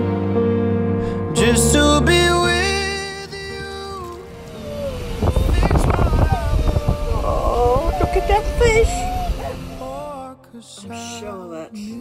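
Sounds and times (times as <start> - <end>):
background music: 0.0 - 12.0
unsteady low rumble: 4.4 - 10.0
person speaking: 6.0 - 9.1.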